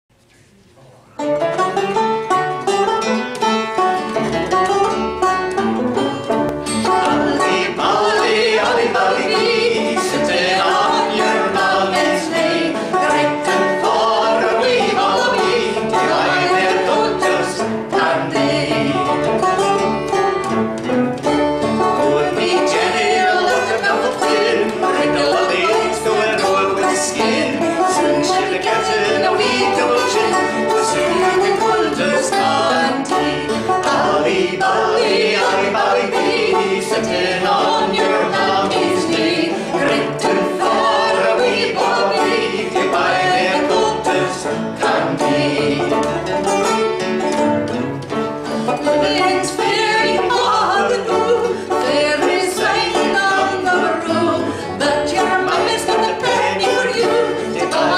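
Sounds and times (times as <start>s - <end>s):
plucked string instrument: 1.1s - 57.9s
banjo: 1.2s - 57.9s
people singing: 6.8s - 57.9s.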